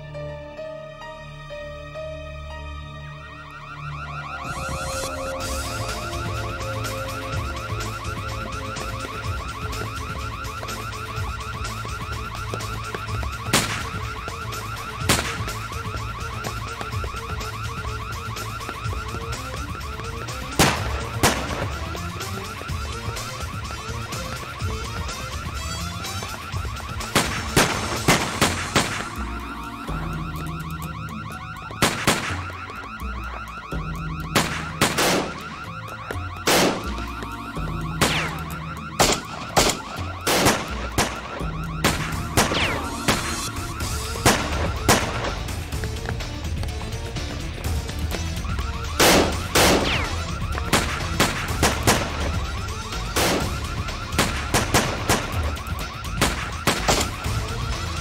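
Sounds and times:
music: 0.0s - 58.0s
pulsing high alarm tone: 2.1s - 58.0s
gunshots: 6.0s - 29.3s, 31.7s - 32.8s, 34.2s - 35.7s, 36.4s - 37.2s, 37.8s - 45.8s, 48.4s - 58.0s.

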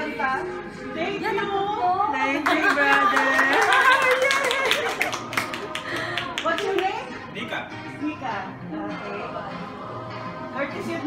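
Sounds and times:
overlapping voices: 2.2s - 7.2s
people clapping: 2.4s - 7.2s.

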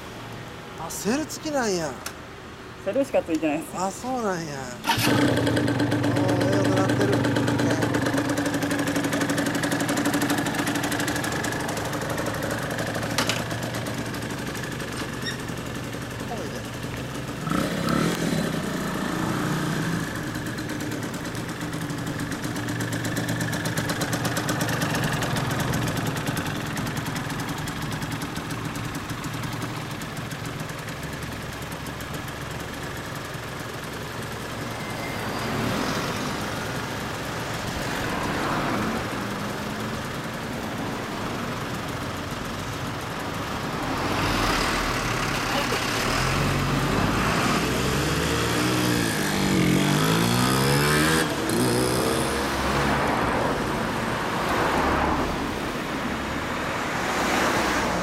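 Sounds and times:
two-stroke motorcycle engine: 4.8s - 58.0s.

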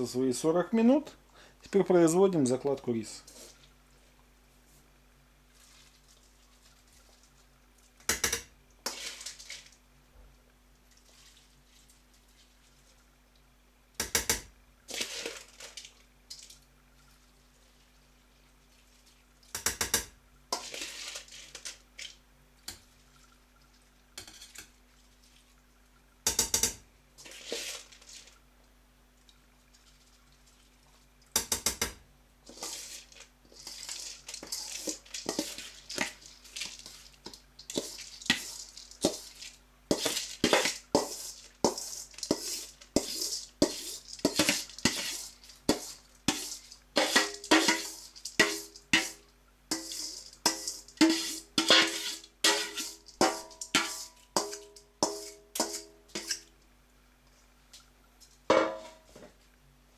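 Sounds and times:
rice rustling and sliding: 5.5s - 7.4s, 8.9s - 9.8s, 14.9s - 16.0s, 20.6s - 22.2s, 27.2s - 28.4s, 32.4s - 56.4s
metal bowl clinking on pot: 39.9s - 56.5s.

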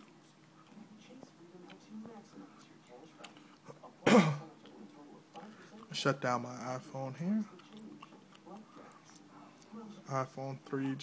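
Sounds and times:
man clearing his throat: 4.0s - 4.5s.

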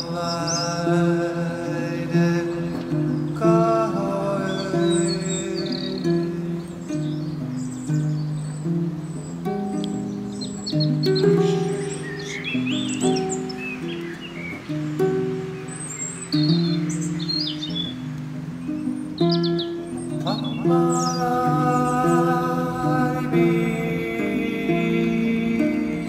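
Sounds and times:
birds chirping: 0.0s - 26.0s
harp plucked low notes: 0.0s - 26.0s.

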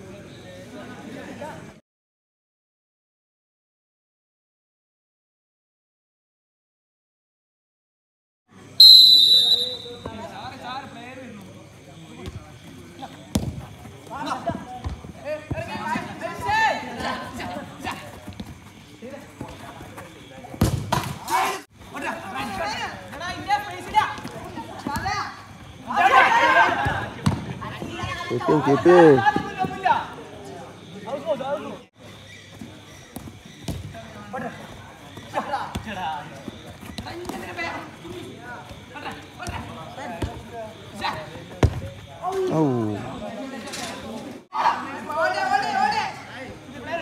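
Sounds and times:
voices calling: 8.8s - 20.6s, 21.3s - 46.9s
football being kicked: 13.3s - 13.6s, 20.6s - 21.1s, 33.1s - 33.9s, 41.6s - 42.0s
players shouting: 25.8s - 27.2s
feet and ball thuds on turf: 41.6s - 42.0s.

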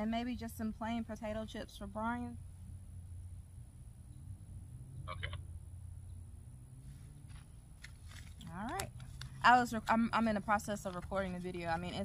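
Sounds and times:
steady low rumble: 0.0s - 12.0s
pulsed animal call: 5.0s - 5.4s.

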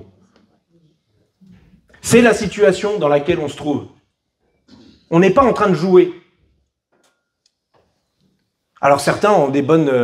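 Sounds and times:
man speaking through microphone: 2.0s - 4.0s, 5.1s - 6.2s, 8.8s - 10.0s.

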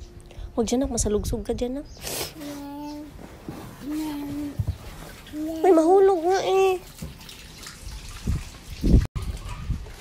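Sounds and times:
toddler sing-song voice: 2.4s - 3.2s, 3.8s - 4.7s.

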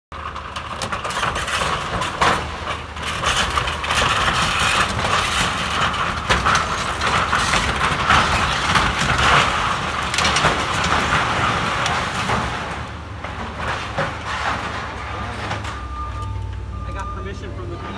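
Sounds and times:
building cracking and crashing: 0.1s - 16.1s
excavator engine under load: 0.1s - 17.9s
falling debris: 0.2s - 16.2s.

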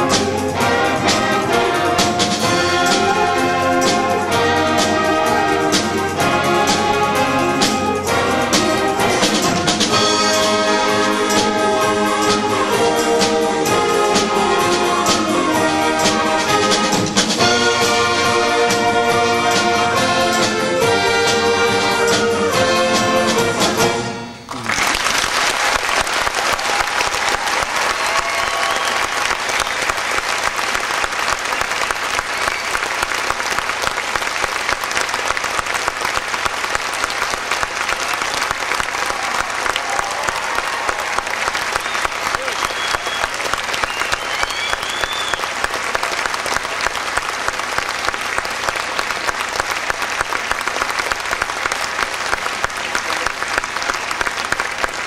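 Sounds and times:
band music: 0.0s - 25.0s, 26.7s - 55.0s
audience applause: 24.5s - 55.0s.

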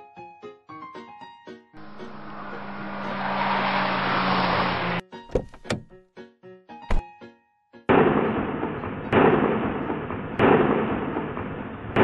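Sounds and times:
cartoon car engine hum: 1.8s - 5.9s
sharp thuds: 5.3s - 5.9s.

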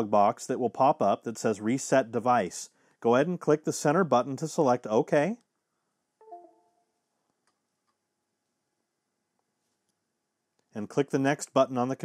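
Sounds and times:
two-note electronic chime: 6.2s - 7.0s.

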